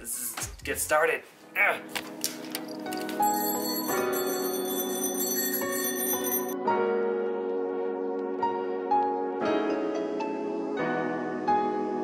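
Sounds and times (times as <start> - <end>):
background music: 1.0 - 12.0
bicycle bell ringing: 2.7 - 6.6.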